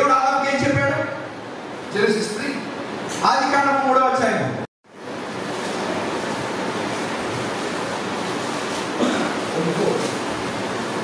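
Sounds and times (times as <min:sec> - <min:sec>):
static hiss: 0:05.0 - 0:11.0.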